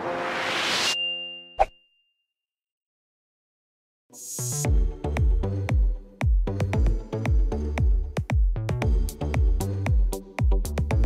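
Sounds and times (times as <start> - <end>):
bright ding-like hit: 0.8 - 2.0.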